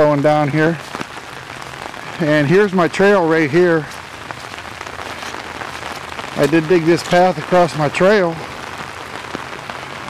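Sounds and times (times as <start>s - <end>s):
rain on an umbrella: 0.0s - 10.0s.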